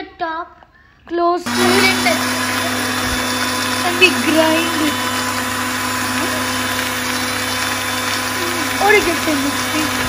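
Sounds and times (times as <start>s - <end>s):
electric blender running: 1.4s - 10.0s.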